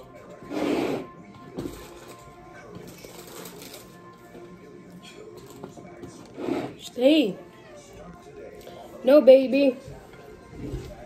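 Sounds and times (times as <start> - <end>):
music from a television: 0.0 - 11.0.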